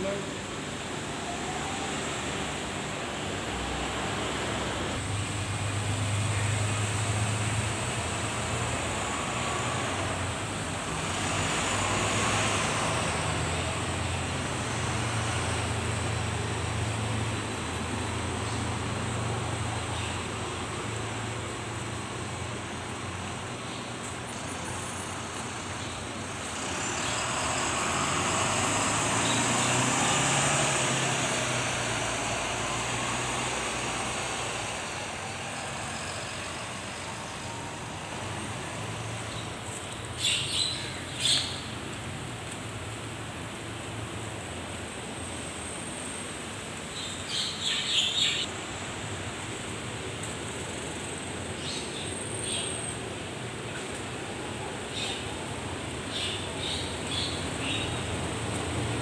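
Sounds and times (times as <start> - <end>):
vehicle passing: 0.0 - 44.0, 53.5 - 59.0
traffic hum: 0.0 - 59.0.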